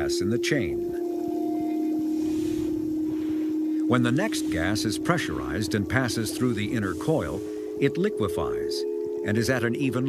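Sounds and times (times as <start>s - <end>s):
faint hiss: 0.0s - 10.0s
low steady drone: 0.0s - 10.0s.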